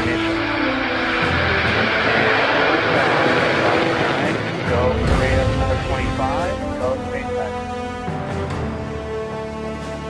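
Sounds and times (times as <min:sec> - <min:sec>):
rocket engines roaring: 0:00.0 - 0:08.9.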